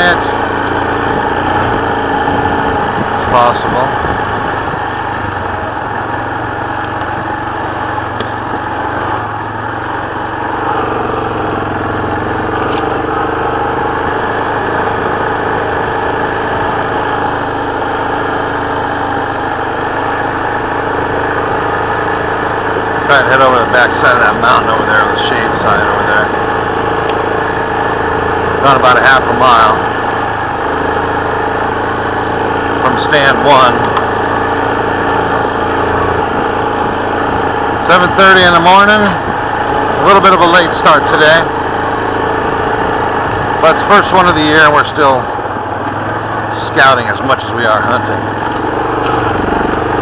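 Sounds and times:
atv engine running: 0:00.0 - 0:50.0.

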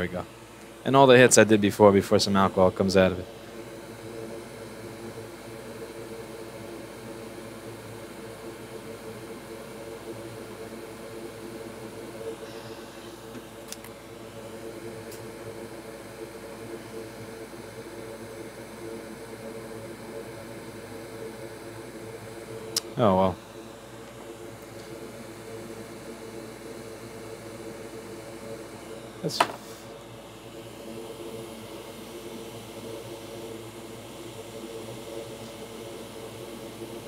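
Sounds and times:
electric fan whirring: 0:00.0 - 0:37.0.

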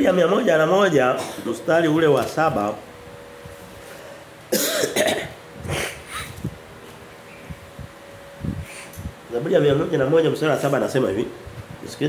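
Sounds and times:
faint steady hum: 0:00.0 - 0:12.0
man coughing: 0:01.2 - 0:01.6, 0:04.5 - 0:06.3.

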